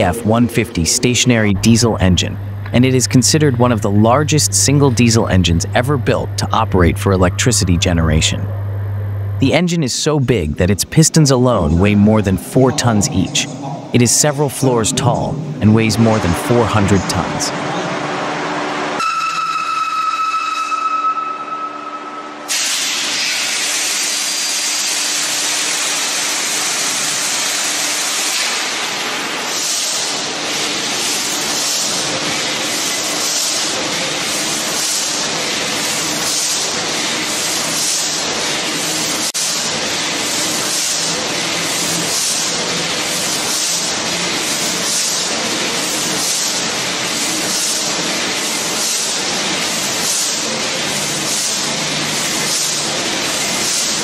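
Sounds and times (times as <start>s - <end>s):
diesel engine running: 0.0s - 9.6s.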